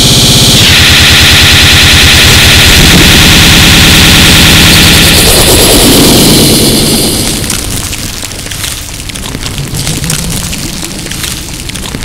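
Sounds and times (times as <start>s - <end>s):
loud dense wall of noise: 0.0s - 12.0s
low rumble: 0.0s - 12.0s.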